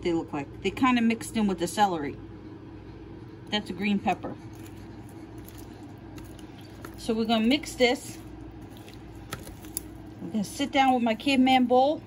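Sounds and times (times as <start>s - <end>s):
steady low hum: 0.0s - 12.0s
vegetables tossed in plastic bowl: 4.2s - 12.0s.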